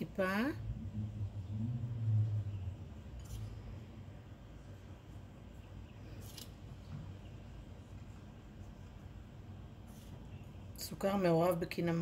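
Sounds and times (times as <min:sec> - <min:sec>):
short low hum: 0:00.5 - 0:04.9.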